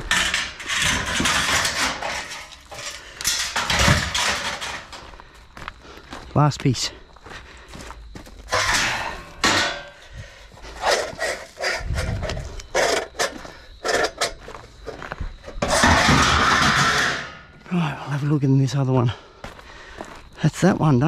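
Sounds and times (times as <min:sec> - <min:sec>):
loud metal-on-metal scrape: 0:00.0 - 0:05.0, 0:08.5 - 0:10.0, 0:10.7 - 0:14.4, 0:15.6 - 0:17.5
metal knocks and rattles: 0:00.0 - 0:05.1, 0:08.5 - 0:10.2, 0:10.8 - 0:17.5
footsteps crunching on gravel: 0:02.5 - 0:16.1, 0:17.5 - 0:21.0.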